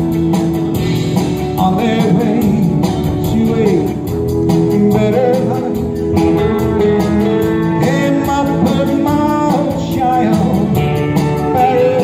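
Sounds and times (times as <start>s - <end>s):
electric guitar: 0.0s - 12.0s
steady drum beat: 0.0s - 12.0s
man singing: 1.4s - 12.0s.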